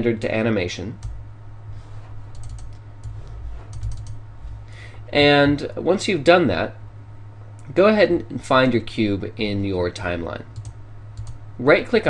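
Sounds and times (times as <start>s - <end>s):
steady low hum: 0.0s - 12.0s
computer mouse clicking: 2.3s - 4.2s, 10.6s - 11.4s.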